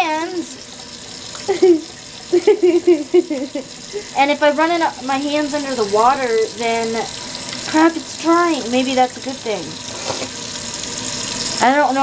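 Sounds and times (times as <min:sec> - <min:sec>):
woman laughing: 0:01.4 - 0:04.2
tap running into steel sink: 0:09.7 - 0:11.4.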